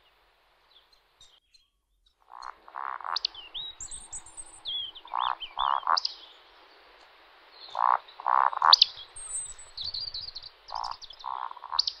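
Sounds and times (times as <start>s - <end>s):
woodcock croaking grunts: 2.3s - 6.0s, 7.7s - 12.0s.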